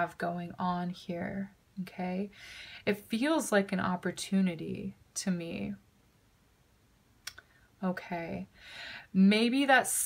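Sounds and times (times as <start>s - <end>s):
woman's voice: 0.0s - 5.8s, 7.8s - 10.0s.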